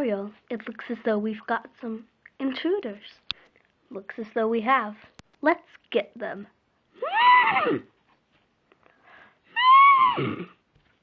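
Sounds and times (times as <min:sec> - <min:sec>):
horse whinnies: 0:07.0 - 0:07.9, 0:09.5 - 0:10.6.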